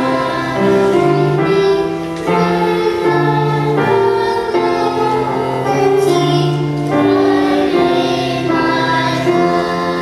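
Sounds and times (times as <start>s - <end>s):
choir singing a hymn: 0.0s - 10.0s.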